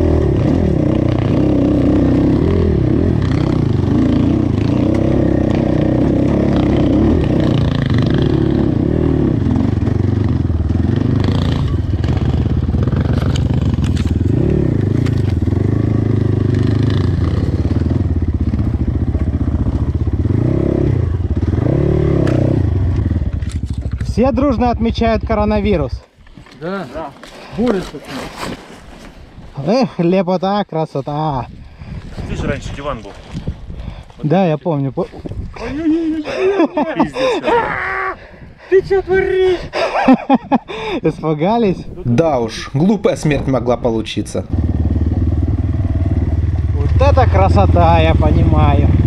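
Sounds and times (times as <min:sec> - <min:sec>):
motorcycle engine revving: 0:00.0 - 0:25.8, 0:44.2 - 0:49.0.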